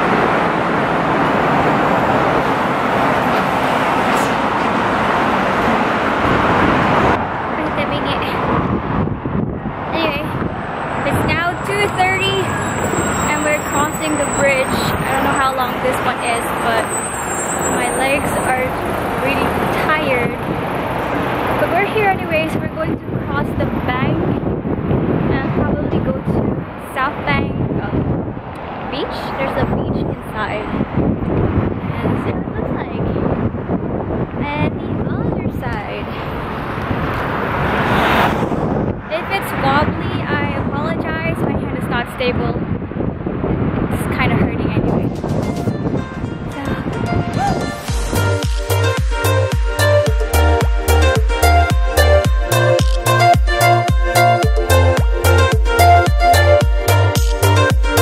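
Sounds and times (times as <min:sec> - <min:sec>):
wind buffeting microphone: 0:00.0 - 0:48.4
road traffic noise: 0:00.0 - 0:58.0
woman talking: 0:07.6 - 0:08.5, 0:09.9 - 0:10.4, 0:11.0 - 0:12.5, 0:13.3 - 0:16.9, 0:17.8 - 0:20.4, 0:21.6 - 0:24.3, 0:25.3 - 0:28.1, 0:28.9 - 0:30.8, 0:31.9 - 0:33.2, 0:34.4 - 0:36.2, 0:39.0 - 0:42.6, 0:43.9 - 0:45.2, 0:46.5 - 0:47.0.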